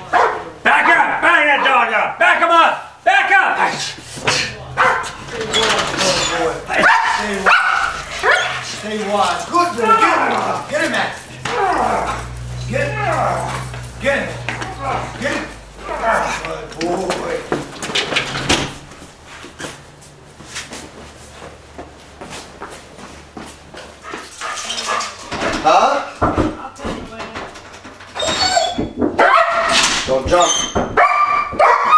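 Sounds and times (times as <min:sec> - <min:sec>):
dog barking aggressively: 0:00.0 - 0:01.9, 0:03.8 - 0:05.4, 0:06.7 - 0:12.5, 0:29.2 - 0:30.0, 0:30.9 - 0:31.9.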